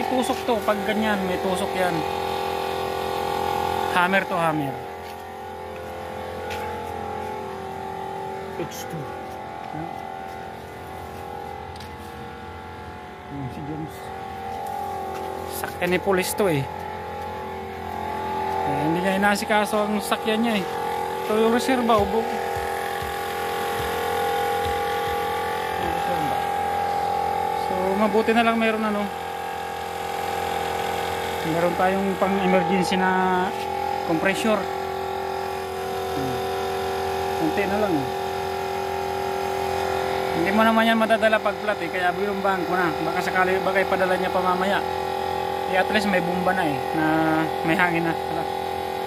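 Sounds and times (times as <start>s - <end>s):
air compressor motor hum: 0.0s - 49.0s.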